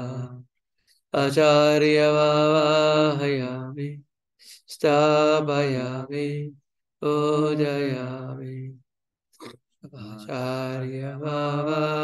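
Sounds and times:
man chanting a prayer: 9.9s - 12.0s.

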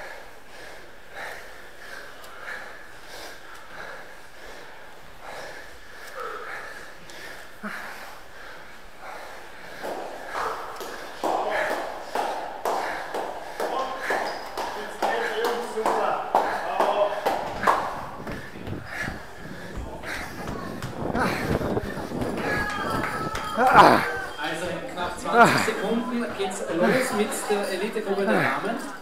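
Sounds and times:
runner breathing: 0.0s - 29.0s
footsteps on concrete steps: 7.0s - 27.6s.

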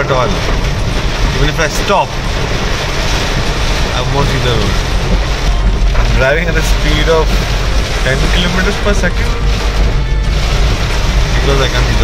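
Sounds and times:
car engine rumble: 0.0s - 12.0s
heavy rain on car windshield: 0.0s - 12.0s
tyres on wet road: 0.0s - 12.0s.

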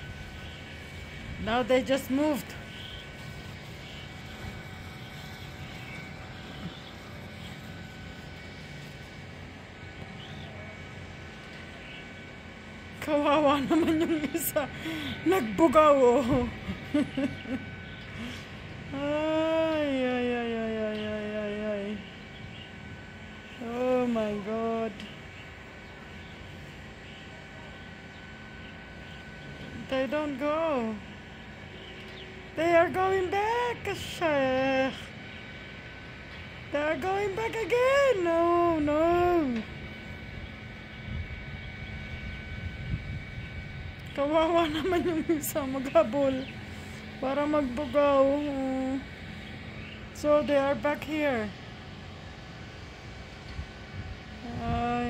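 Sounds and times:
low outdoor rumble: 0.0s - 55.0s
steady rush of background noise: 0.0s - 55.0s
faint bird chirps: 2.5s - 8.0s.

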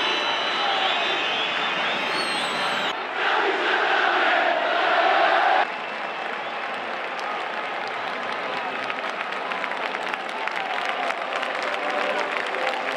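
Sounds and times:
stadium crowd chanting: 0.0s - 5.7s
crowd noise and applause: 0.0s - 12.9s.

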